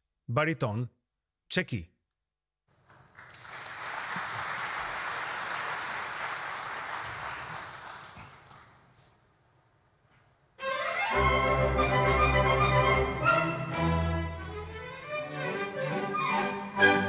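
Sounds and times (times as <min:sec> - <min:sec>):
audience applause: 0:02.8 - 0:09.0.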